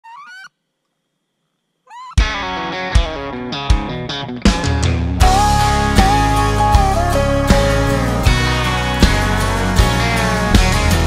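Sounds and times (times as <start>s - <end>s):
duck squealing call: 0.0s - 0.5s, 1.9s - 2.2s.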